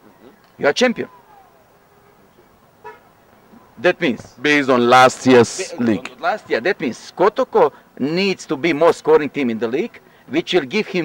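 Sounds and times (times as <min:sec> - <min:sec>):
distant vehicle horn: 0:02.0 - 0:03.1.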